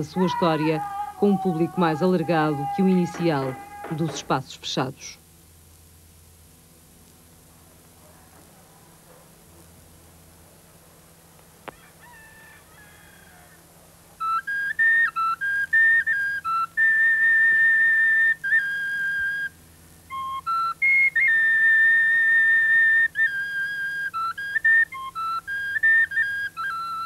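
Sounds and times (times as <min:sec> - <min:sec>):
high-pitched flute playing: 0:14.2 - 0:27.0.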